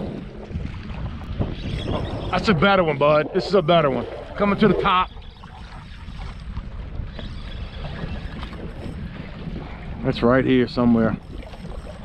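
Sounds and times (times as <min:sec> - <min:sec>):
waves slapping boat hull: 0:00.0 - 0:12.0
wind buffeting microphone: 0:00.0 - 0:12.0.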